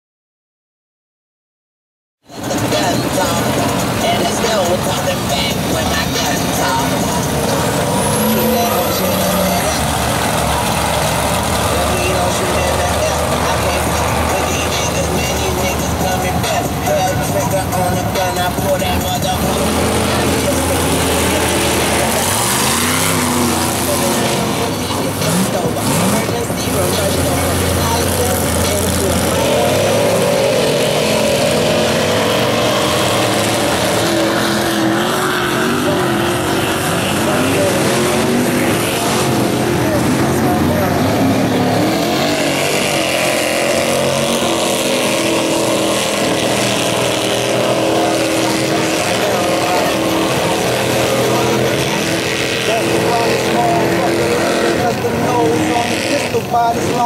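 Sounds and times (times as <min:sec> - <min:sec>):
truck engines revving: 0:02.2 - 0:57.0.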